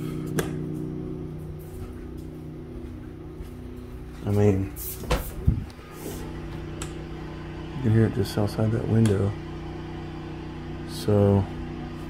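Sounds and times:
generator humming through window: 0:00.0 - 0:12.0.

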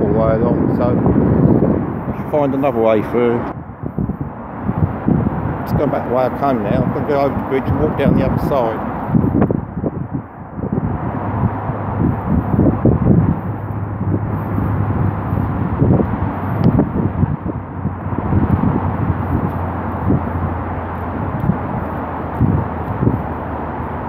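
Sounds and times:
steady low rumble: 0:00.0 - 0:24.0
wind buffeting microphone: 0:00.0 - 0:24.0.

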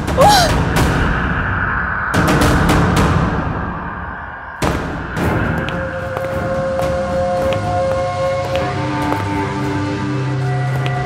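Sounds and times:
eerie held tones over drone: 0:00.0 - 0:11.0.

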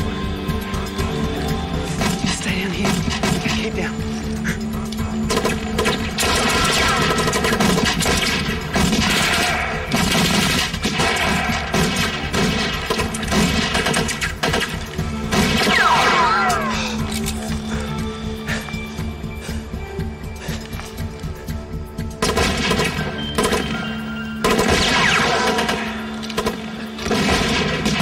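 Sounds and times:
tense orchestral music: 0:00.0 - 0:28.0
rifle and pistol gunfire: 0:05.3 - 0:16.2, 0:24.4 - 0:28.0.

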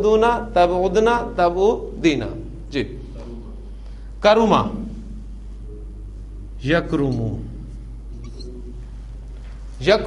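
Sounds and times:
low mains hum: 0:00.0 - 0:10.0
man speaking: 0:05.8 - 0:07.6.

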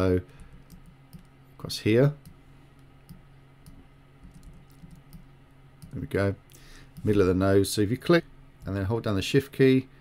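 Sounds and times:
low steady hum: 0:00.0 - 0:10.0
mouse and keyboard clicks: 0:03.1 - 0:06.0.

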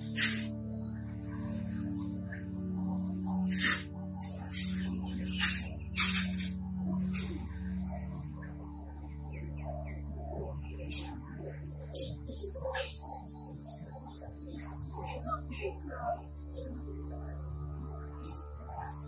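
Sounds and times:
background music drone: 0:00.0 - 0:19.0
hose spray nozzle hissing: 0:00.1 - 0:00.5.

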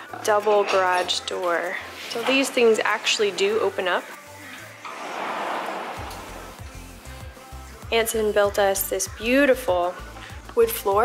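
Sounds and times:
background music with low bass: 0:00.0 - 0:11.0
wooden garage door swinging open: 0:04.8 - 0:06.7
soft rushing noise: 0:04.8 - 0:06.8.

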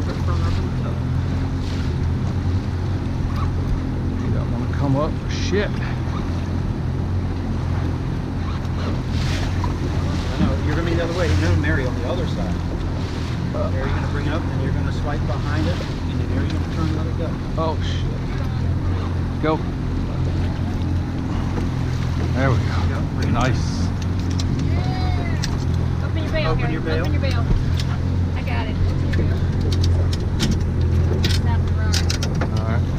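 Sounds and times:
boat engine idling: 0:00.0 - 0:32.9
water sloshing against hull: 0:00.0 - 0:32.9.

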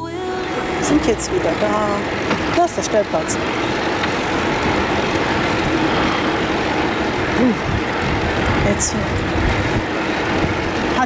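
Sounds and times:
bicycle tyres on paved road: 0:00.2 - 0:11.0
wind rushing over microphone: 0:00.6 - 0:11.0.

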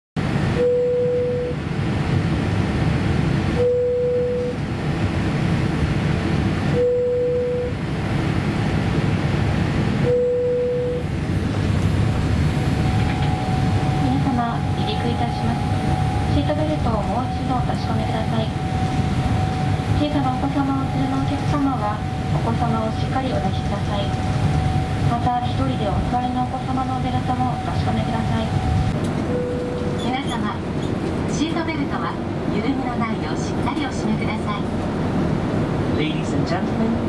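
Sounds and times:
aircraft cabin rumble: 0:00.2 - 0:37.0
cabin beep: 0:00.6 - 0:01.6, 0:03.6 - 0:04.6, 0:06.8 - 0:07.8, 0:10.0 - 0:11.1, 0:12.6 - 0:25.8, 0:27.2 - 0:30.5
cabin announcement over speakers: 0:10.8 - 0:34.9, 0:35.8 - 0:37.0.

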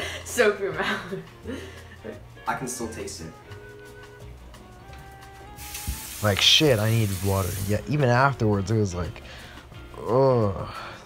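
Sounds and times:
quiet background music: 0:00.0 - 0:11.0
sink tap running: 0:05.6 - 0:08.0.

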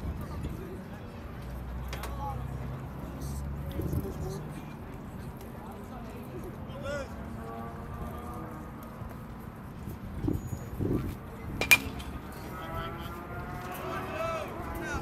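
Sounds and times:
faint voices talking: 0:00.0 - 0:15.0
baseball sharp crack: 0:11.6 - 0:12.2.

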